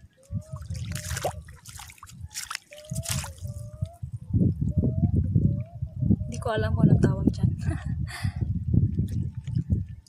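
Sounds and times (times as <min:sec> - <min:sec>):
feet wading through water: 0:00.0 - 0:04.0
wind on microphone: 0:00.0 - 0:10.0
water splashing: 0:00.5 - 0:03.6.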